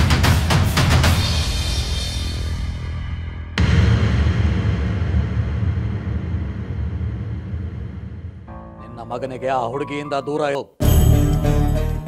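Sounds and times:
deep rumbling boom: 0:03.6 - 0:08.6.

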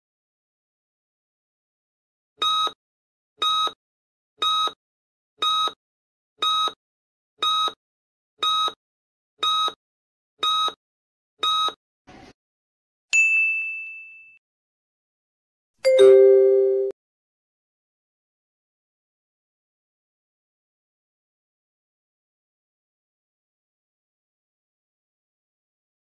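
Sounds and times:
bright ding: 0:13.2 - 0:14.4, 0:15.9 - 0:16.9.

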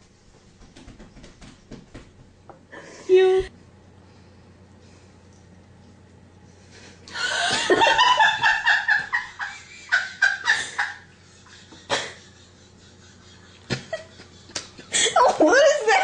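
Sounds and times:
woman laughing: 0:07.1 - 0:16.0.

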